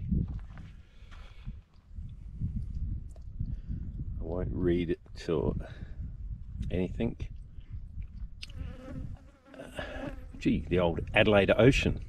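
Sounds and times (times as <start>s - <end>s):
wind rumble on microphone: 0.0s - 12.0s
fly buzzing: 8.4s - 10.4s.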